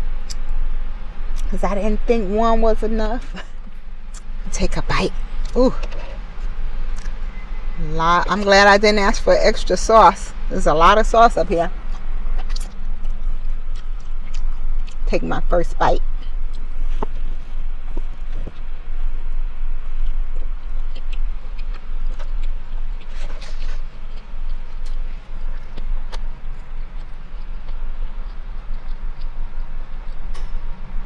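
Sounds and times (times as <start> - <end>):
low hum inside a car: 0.0 - 31.0
mouth clicks and smacks: 0.2 - 0.6, 11.8 - 15.1, 19.9 - 30.9
person chewing food: 11.7 - 15.1, 16.0 - 31.0.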